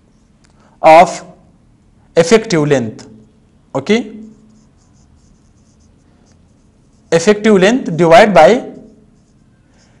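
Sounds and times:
marker scratching on whiteboard: 4.1s - 7.6s, 8.2s - 10.0s.

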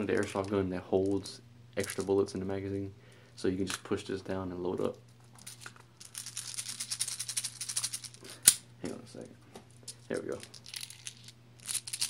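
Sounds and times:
plastic bbs rattling into magazine: 5.4s - 8.6s, 9.9s - 12.0s.

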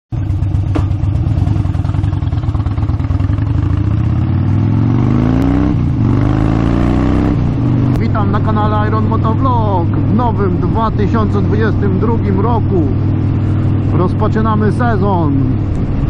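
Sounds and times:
motorcycle engine accelerating: 0.1s - 16.0s.

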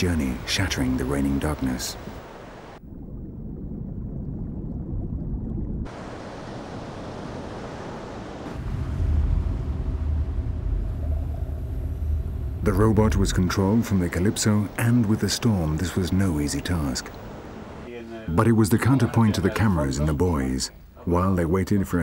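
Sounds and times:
rumbling sea: 0.0s - 17.9s.

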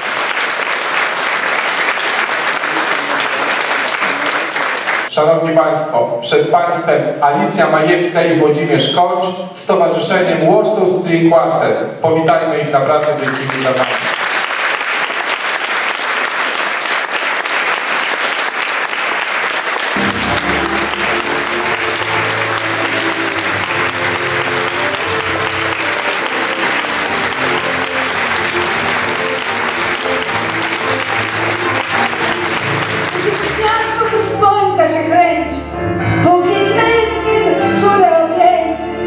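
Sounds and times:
audience applauding: 0.0s - 5.1s, 13.0s - 34.4s
piano and string quartet: 20.0s - 39.0s.

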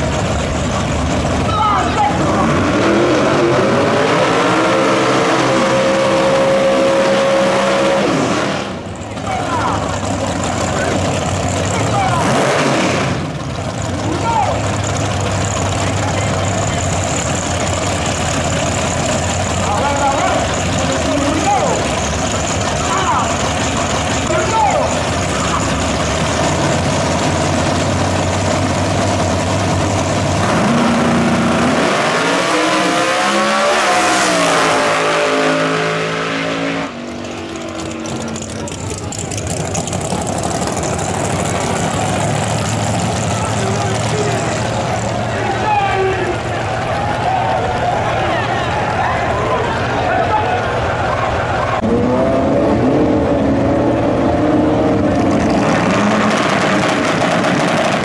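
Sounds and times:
crowd noise: 0.0s - 58.0s
drag car engines: 0.0s - 58.0s.

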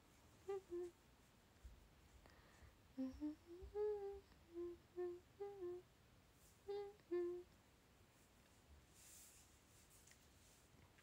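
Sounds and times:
woman humming: 0.4s - 1.0s, 2.9s - 5.9s, 6.6s - 7.5s.

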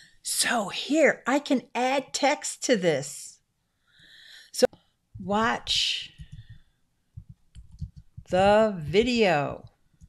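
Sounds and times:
keyboard key taps: 7.2s - 8.3s.

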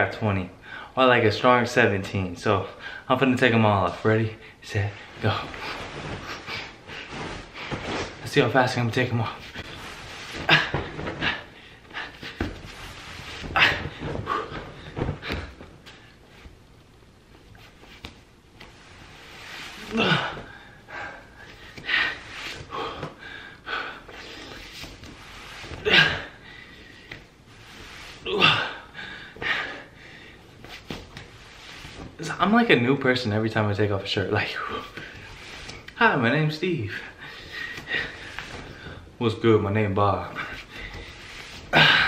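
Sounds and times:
clothing rustling and swishing: 3.4s - 23.2s, 24.0s - 28.6s, 29.3s - 42.0s
man breathing hard: 28.3s - 30.5s.

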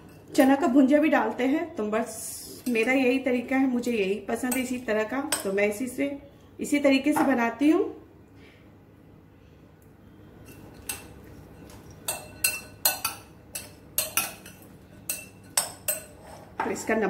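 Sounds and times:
metal spoon clinking on glass bowl: 10.4s - 16.2s.

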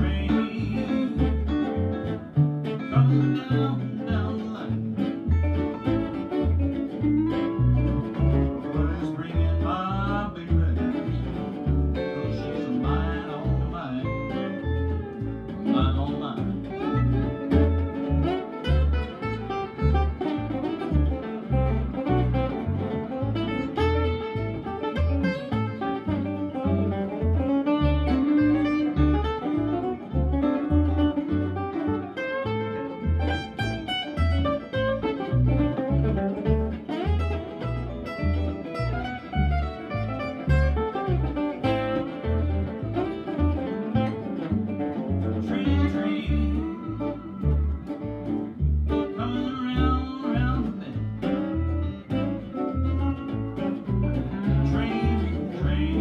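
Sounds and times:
acoustic guitars picking melody: 0.0s - 56.0s
upright bass beat: 0.0s - 56.0s.

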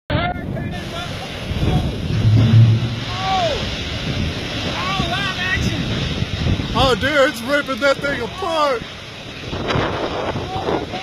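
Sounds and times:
strong wind on microphone: 0.1s - 11.0s.

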